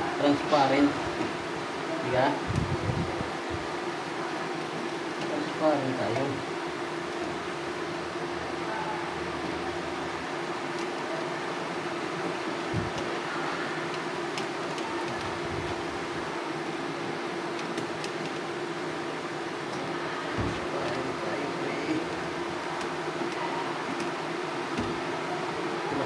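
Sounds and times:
fan-like machine hum: 0:00.0 - 0:26.0.

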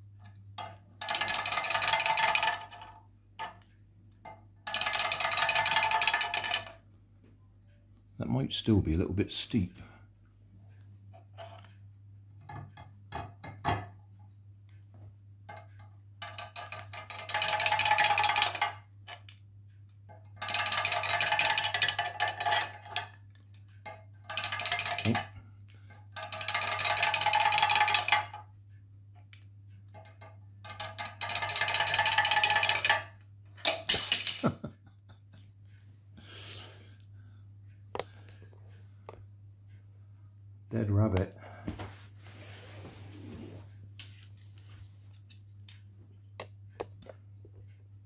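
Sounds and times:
plastic toy clattering down slate: 0:24.3 - 0:25.3.

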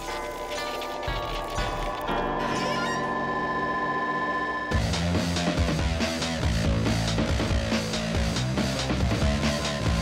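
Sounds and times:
theme music with held notes: 0:00.0 - 0:03.6, 0:04.7 - 0:10.0.

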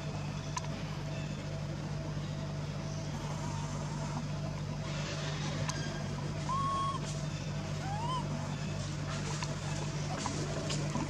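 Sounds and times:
steady low hum: 0:00.0 - 0:11.0
baby monkey cooing: 0:06.4 - 0:08.6.

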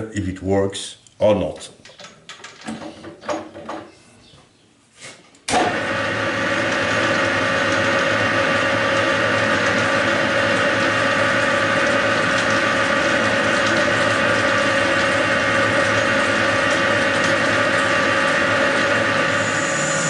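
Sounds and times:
metal lathe motor whining: 0:05.6 - 0:20.0.

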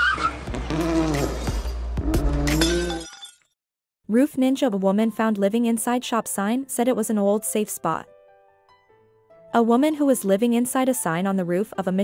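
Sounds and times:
glass breaking crash and tinkling: 0:02.6 - 0:03.5.

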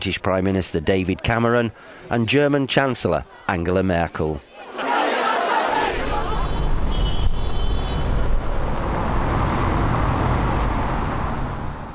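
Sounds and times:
road traffic rumble: 0:05.9 - 0:11.9.

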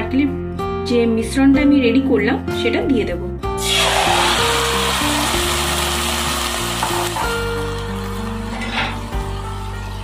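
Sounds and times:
background music: 0:00.0 - 0:10.0
filling sizzling in a pot: 0:03.6 - 0:10.0.

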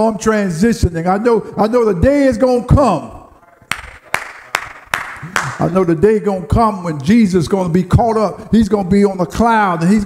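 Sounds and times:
man clapping hands: 0:03.7 - 0:05.7.

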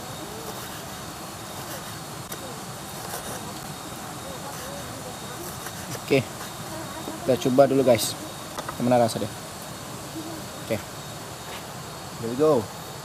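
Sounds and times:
faint distant voices: 0:00.0 - 0:12.8
insects: 0:00.0 - 0:13.0
steady background hiss: 0:00.0 - 0:13.0.

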